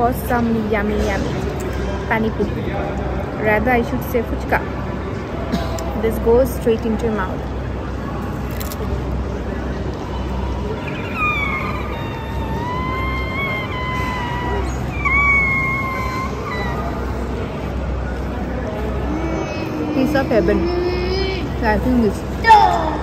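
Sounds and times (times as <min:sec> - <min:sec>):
low background hum: 0:00.0 - 0:23.0.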